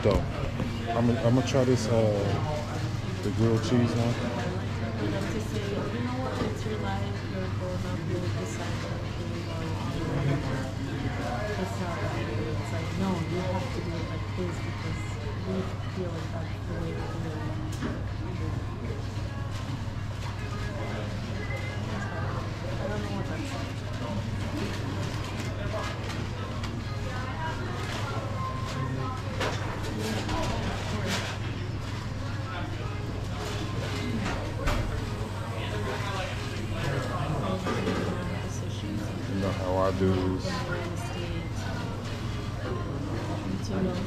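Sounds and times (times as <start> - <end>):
customers chattering: 0.0 - 44.0.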